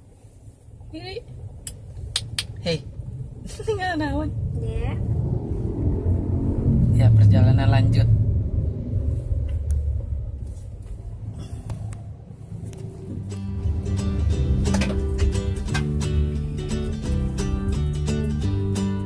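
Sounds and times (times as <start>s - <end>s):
road rumble inside car: 0.0s - 19.0s
guitar music: 13.0s - 19.0s.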